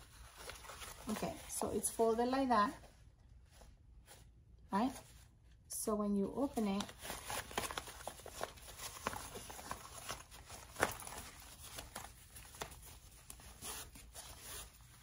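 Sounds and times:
fabric rustling: 0.0 - 5.6, 6.4 - 15.0.

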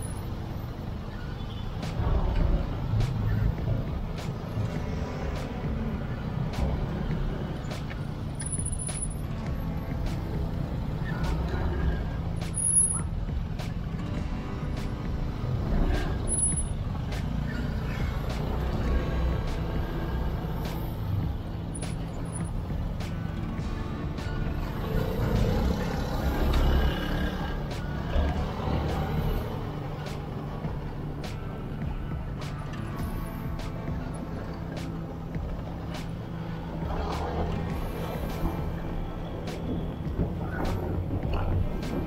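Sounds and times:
traffic rumble: 0.0 - 42.0
motorcycle engine at low speed: 18.7 - 28.5.

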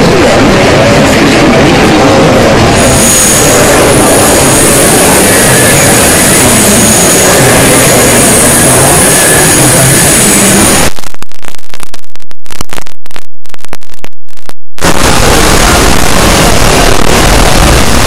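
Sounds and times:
harsh choppy noise bursts: 0.0 - 18.0
loud distorted noise: 0.0 - 18.0.

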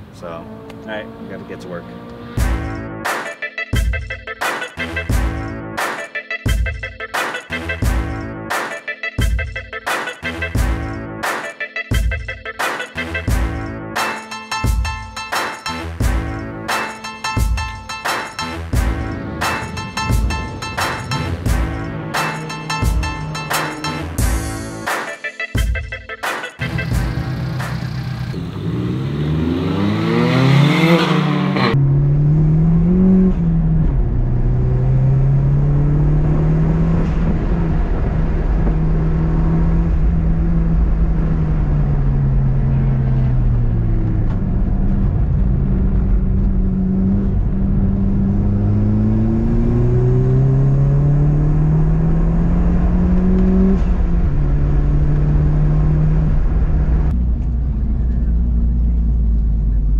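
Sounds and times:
turbocharged car engine accelerating: 0.0 - 2.9, 26.6 - 59.9.

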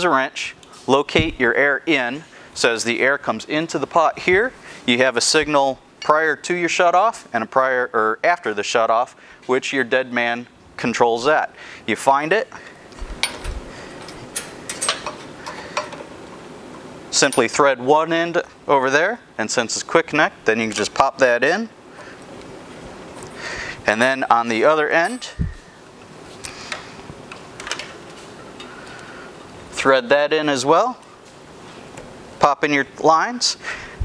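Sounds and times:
low thump: 1.1 - 1.5.

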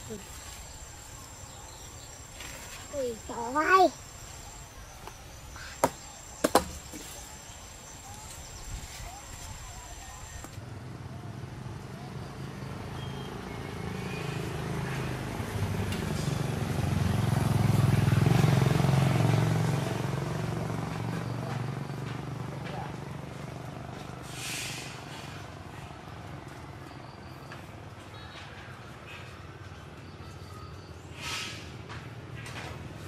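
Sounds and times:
high insect drone: 0.0 - 10.5.

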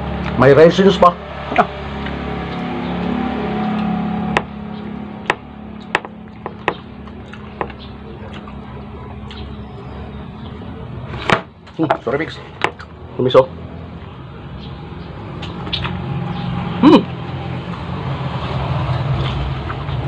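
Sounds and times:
chewing with mouth clicks: 5.7 - 9.6, 15.3 - 16.0, 18.8 - 20.0.

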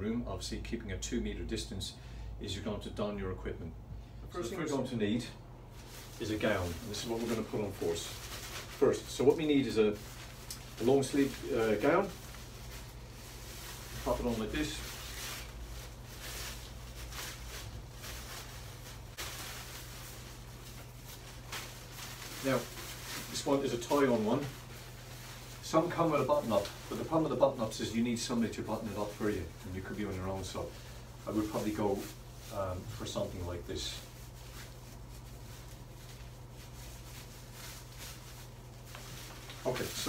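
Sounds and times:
low room hum: 0.0 - 40.0
disposable gown rustling: 5.7 - 40.0.

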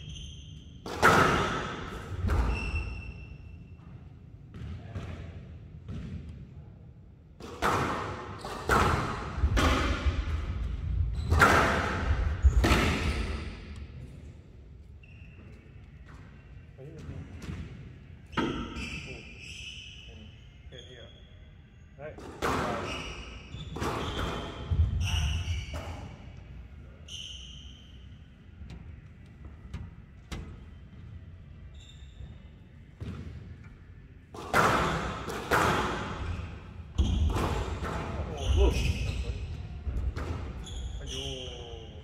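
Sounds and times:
squash ball smack echoing: 7.4 - 10.6, 11.3 - 13.1, 34.3 - 38.4.

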